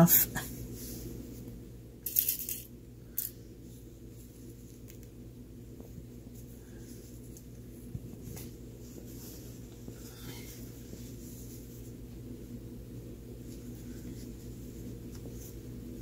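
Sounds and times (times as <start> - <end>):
steady low hum: 0.0 - 16.0
cloth rustling: 5.9 - 12.2, 13.4 - 16.0.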